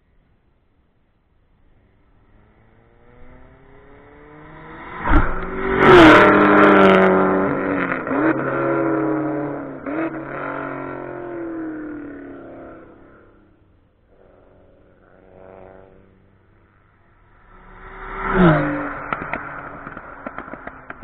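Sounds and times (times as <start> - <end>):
race car passing at full throttle: 1.9 - 13.4, 14.2 - 21.0.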